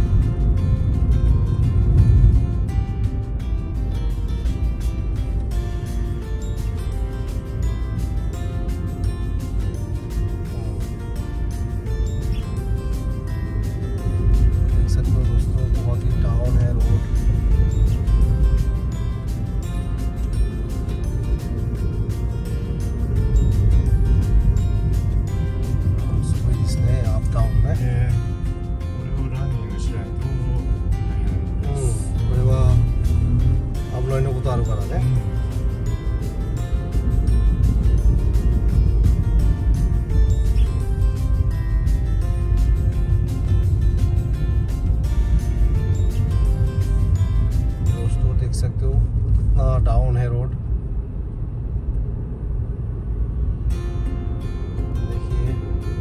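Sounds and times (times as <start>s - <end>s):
music with steady beat: 0.0s - 48.3s.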